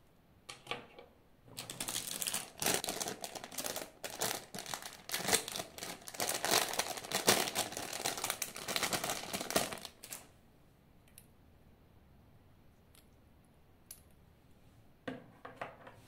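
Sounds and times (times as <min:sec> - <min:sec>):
plastic bag crinkling: 0:01.5 - 0:10.3.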